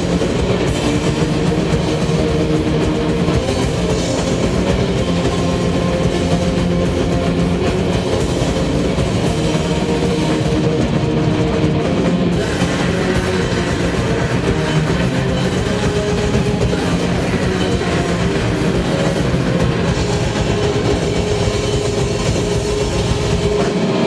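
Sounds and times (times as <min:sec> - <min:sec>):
distorted guitar chords: 0:00.0 - 0:24.0
metal band playing live: 0:00.0 - 0:24.0.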